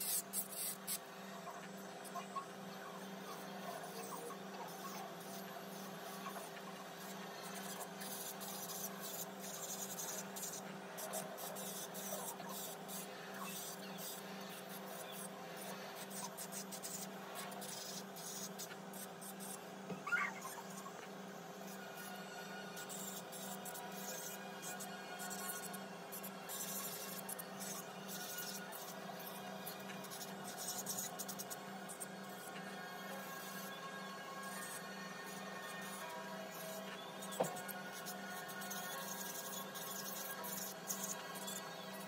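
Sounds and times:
electric nail drill humming: 0:00.0 - 0:01.1, 0:03.0 - 0:42.0.

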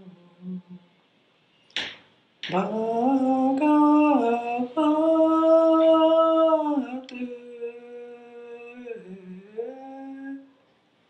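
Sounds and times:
person chanting held notes: 0:02.4 - 0:10.6.

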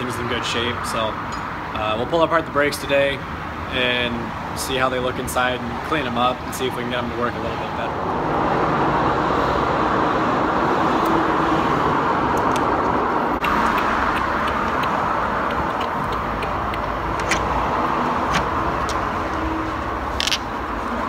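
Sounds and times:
steady rushing noise: 0:05.6 - 0:21.0.

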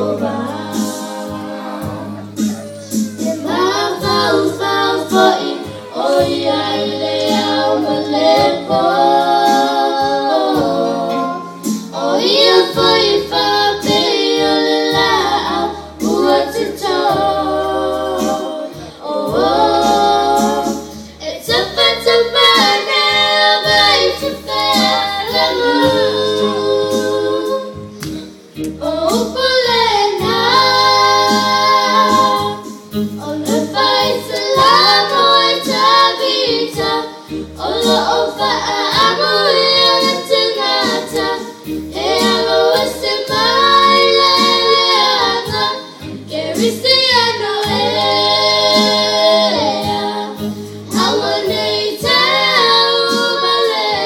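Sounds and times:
girls singing through microphones: 0:00.0 - 0:54.0.

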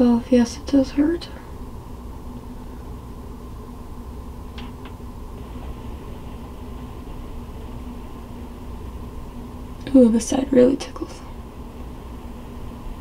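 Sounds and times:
faint constant tone: 0:00.0 - 0:13.0
low machine hum: 0:00.0 - 0:13.0.

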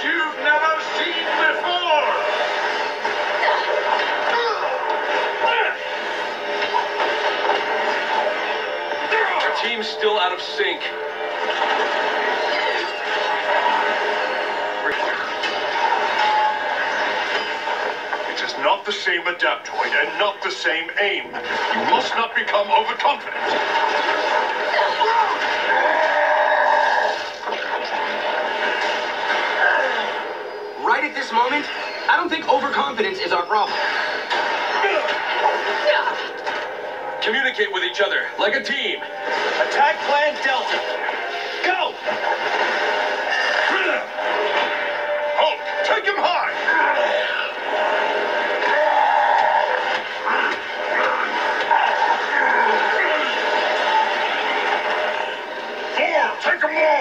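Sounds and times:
dramatic music: 0:00.0 - 0:18.5, 0:33.6 - 0:56.0.

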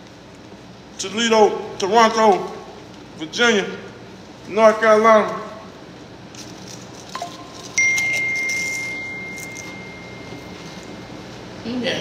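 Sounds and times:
chime tones: 0:07.2 - 0:11.0.

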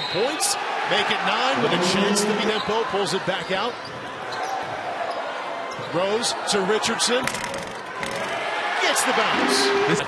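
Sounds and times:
arena background noise: 0:00.1 - 0:10.0.

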